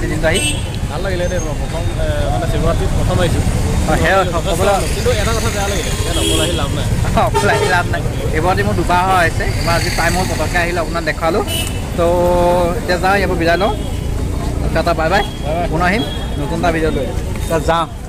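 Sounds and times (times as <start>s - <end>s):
crowd noise: 0.0s - 18.0s
men talking: 0.0s - 18.0s
road traffic rumble: 0.0s - 18.0s.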